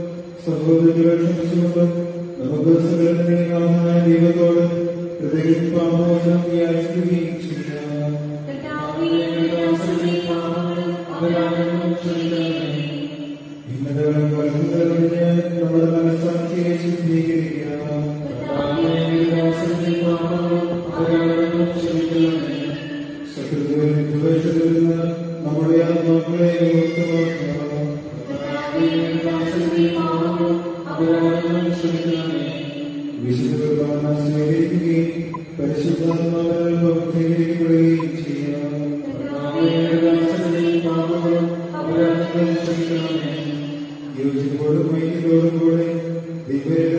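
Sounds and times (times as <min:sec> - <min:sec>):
voices singing religious chant: 0:17.5 - 0:24.9, 0:25.5 - 0:45.8.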